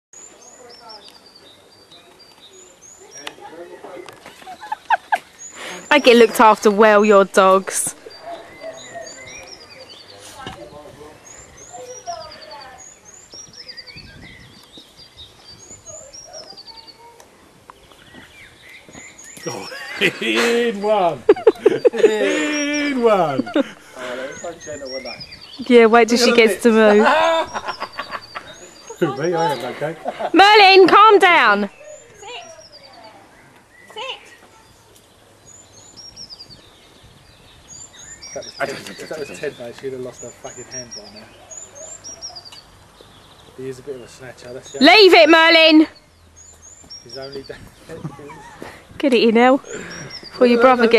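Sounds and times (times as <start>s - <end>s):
small birds chirping: 0.2s - 50.9s
distant talking: 0.4s - 13.3s, 19.3s - 35.4s, 38.1s - 46.0s, 47.0s - 50.9s.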